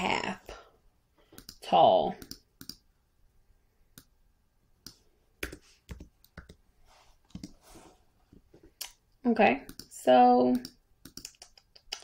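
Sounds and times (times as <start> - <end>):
mouse and keyboard clicks: 10.6 - 12.0.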